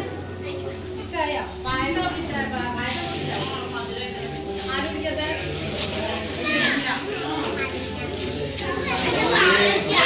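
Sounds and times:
adults talking: 0.0 - 10.0
children calling and chattering: 5.3 - 10.0.

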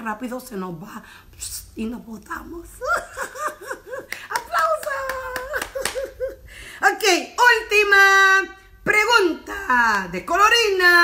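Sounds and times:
woman laughing heartily: 2.8 - 6.7
sharp hand claps: 4.1 - 6.1.

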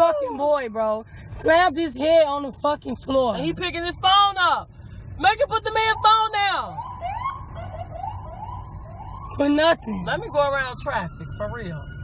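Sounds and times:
low traffic rumble: 0.0 - 12.0
siren in rising sweeps: 6.7 - 12.0.

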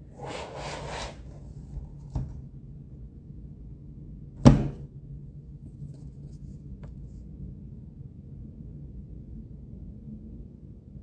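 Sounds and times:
low room hum: 0.0 - 11.0
sharp knock on hard surface: 4.4 - 4.8.

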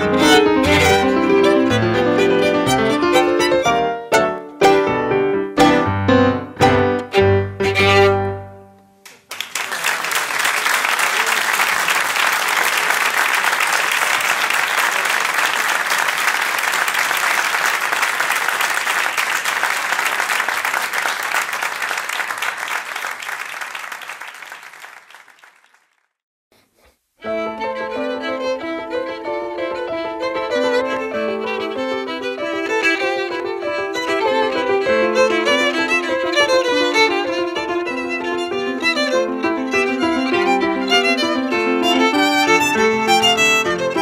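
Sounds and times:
digital piano chords: 0.0 - 8.8
audience applauding: 9.0 - 26.1.

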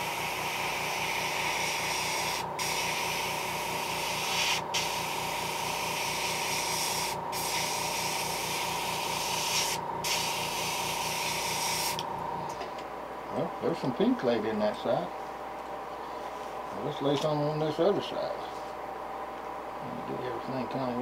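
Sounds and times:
airbrush spraying hiss: 0.0 - 12.0
low pulsing hum: 0.0 - 21.0.

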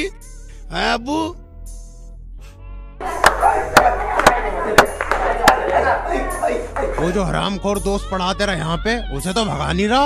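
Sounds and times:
indistinct voices: 3.0 - 9.7.

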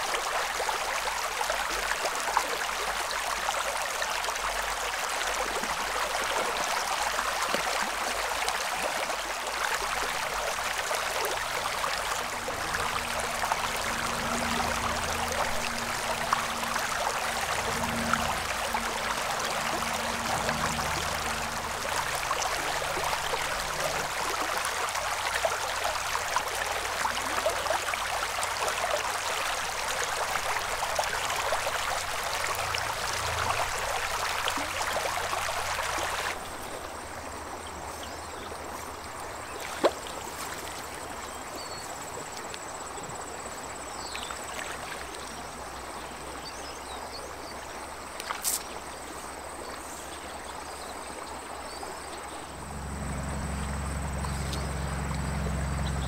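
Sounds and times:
stream water running over rocks: 0.0 - 56.0.

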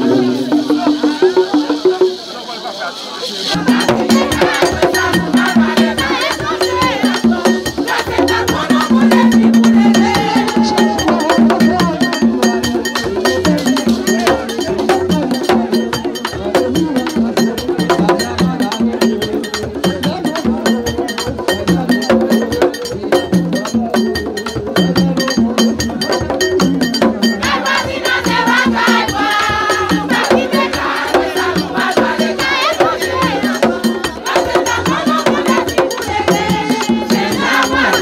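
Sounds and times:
drums: 0.0 - 2.4, 3.5 - 38.0
group singing a chant: 0.0 - 2.5, 3.3 - 38.0
fast clicking percussion: 0.0 - 38.0.

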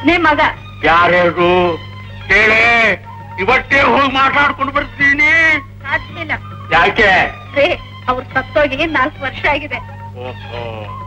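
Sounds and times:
film dialogue speech: 0.0 - 10.9
steady low hum: 0.0 - 11.0
drawn-out wavering vowel: 7.4 - 11.0.

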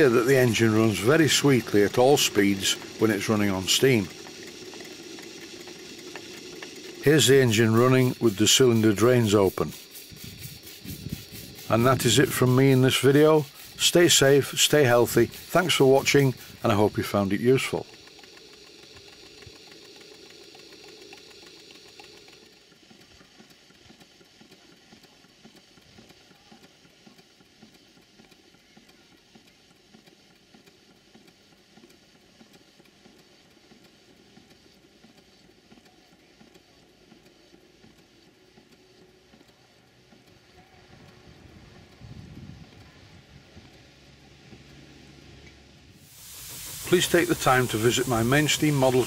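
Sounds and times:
steam engine running: 0.0 - 49.0.

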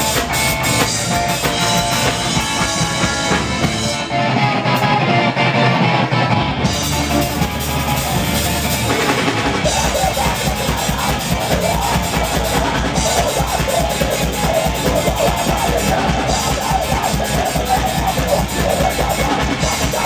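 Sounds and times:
bass drum: 0.0 - 4.1, 6.7 - 20.0
electric guitar: 0.0 - 20.0
ska band playing: 0.0 - 20.0.

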